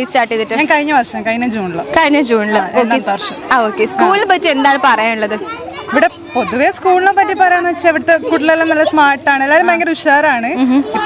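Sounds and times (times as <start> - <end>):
children's voices: 1.8 - 9.8, 10.6 - 11.0.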